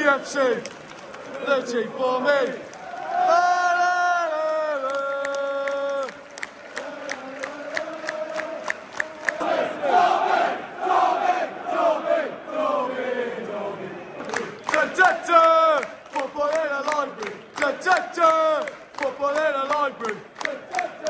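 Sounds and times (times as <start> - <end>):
rhythmic hand claps: 0.0 - 3.0, 4.3 - 9.6, 14.2 - 21.0
football crowd chanting: 1.2 - 21.0.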